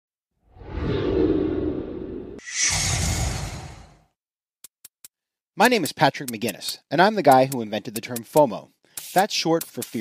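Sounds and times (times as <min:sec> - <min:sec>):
whoosh: 0:00.5 - 0:04.0.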